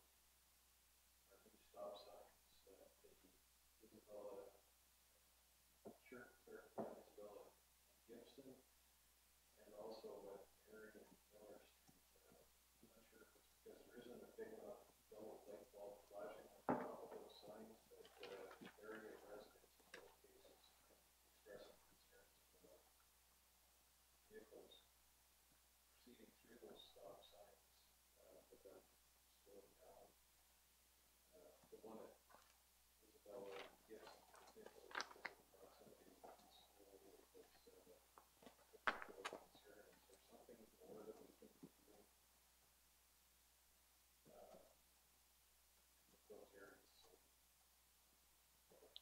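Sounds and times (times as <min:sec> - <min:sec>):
faint low murmur: 0:00.0 - 0:49.0
faint indistinct voices: 0:01.3 - 0:03.2, 0:03.8 - 0:04.6, 0:05.9 - 0:07.5, 0:08.1 - 0:08.6, 0:09.6 - 0:22.8, 0:24.3 - 0:24.8, 0:26.0 - 0:30.1, 0:31.3 - 0:32.2, 0:33.0 - 0:38.0, 0:38.7 - 0:42.0, 0:44.3 - 0:44.8, 0:46.2 - 0:47.2.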